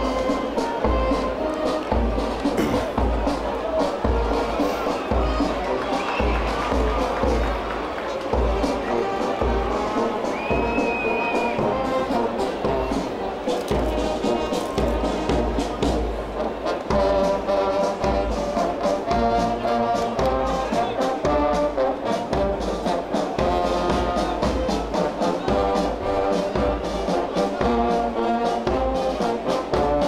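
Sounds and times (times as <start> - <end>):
brass band playing a march: 0.0 - 30.0
steady drum beat: 0.0 - 30.0.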